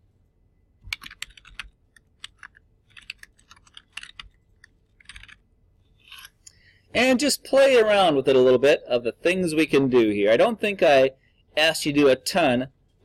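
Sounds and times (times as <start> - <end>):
typing on computer keyboard: 0.8 - 5.4.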